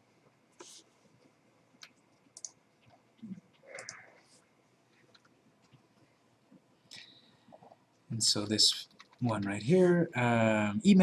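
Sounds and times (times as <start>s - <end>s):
computer mouse clicks: 1.8s - 3.0s, 3.6s - 4.2s, 5.0s - 5.8s, 8.8s - 9.5s.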